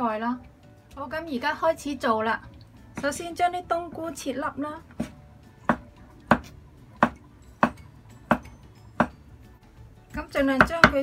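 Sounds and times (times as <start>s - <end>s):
knife chopping on wooden board: 5.0s - 9.2s, 10.6s - 11.0s.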